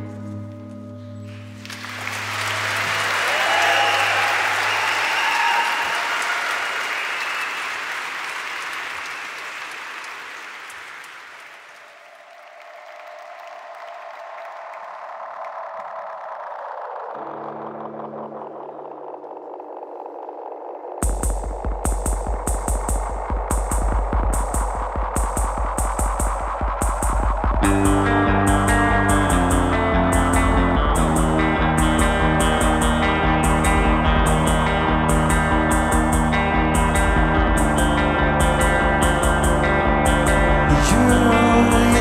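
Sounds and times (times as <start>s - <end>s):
audience applauding: 1.3s - 17.1s.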